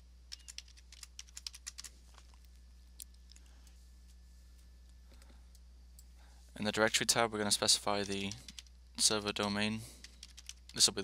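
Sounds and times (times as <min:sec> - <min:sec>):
low steady hum: 0:00.0 - 0:11.0
keyboard typing: 0:00.3 - 0:01.9, 0:08.0 - 0:08.7, 0:10.0 - 0:10.8.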